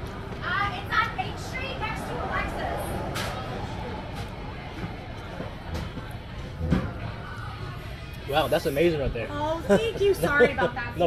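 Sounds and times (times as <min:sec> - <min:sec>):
diners chatting: 0:00.0 - 0:11.0
faint music: 0:00.0 - 0:11.0.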